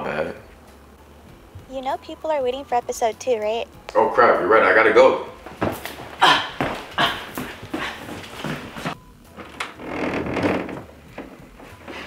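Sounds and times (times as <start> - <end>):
hurried footsteps: 5.4 - 9.0.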